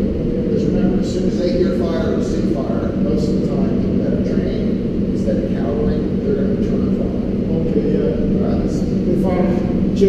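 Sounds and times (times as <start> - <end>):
low rumble with hum: 0.0 - 10.0.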